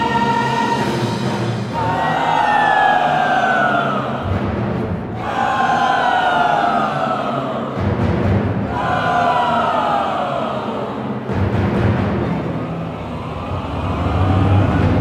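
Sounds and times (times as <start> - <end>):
choir singing sliding wails: 0.0 - 15.0
string orchestra: 0.0 - 15.0
low drum rumbles: 11.3 - 15.0.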